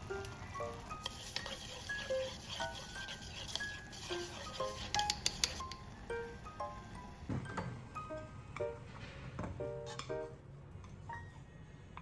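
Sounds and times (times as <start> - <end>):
soft melodic background music: 0.0 - 12.0
chopsticks stirring egg in bowl: 0.9 - 5.7
chopsticks clicking on bowl: 4.8 - 5.8.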